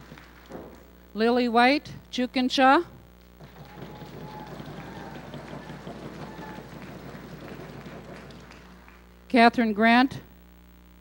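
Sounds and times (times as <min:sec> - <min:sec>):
audience applauding: 0:03.4 - 0:09.1.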